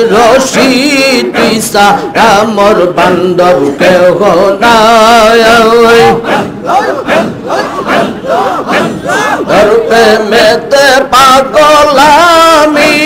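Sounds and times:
crowd of men chanting: 0.0s - 13.0s.

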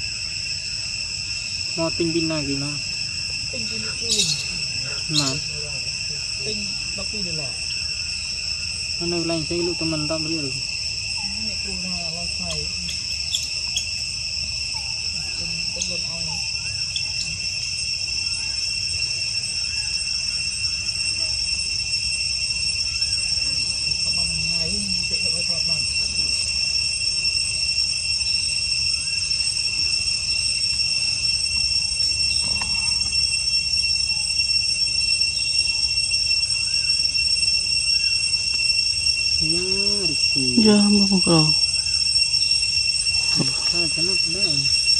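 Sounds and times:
insect chorus ringing: 0.0s - 44.9s.

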